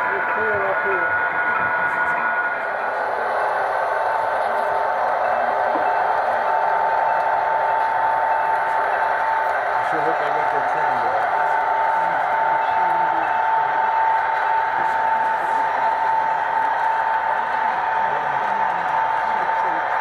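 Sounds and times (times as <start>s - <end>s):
model locomotive engine drone: 0.0s - 20.0s
steady whine-like tone: 0.0s - 20.0s.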